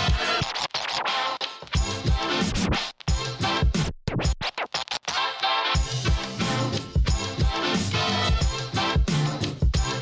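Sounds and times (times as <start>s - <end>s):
electronic music with drum beat: 0.0s - 10.0s
record scratch effects: 0.0s - 10.0s.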